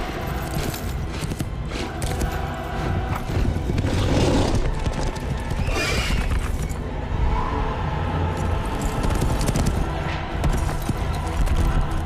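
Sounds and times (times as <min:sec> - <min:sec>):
horse hooves galloping: 0:08.4 - 0:12.0.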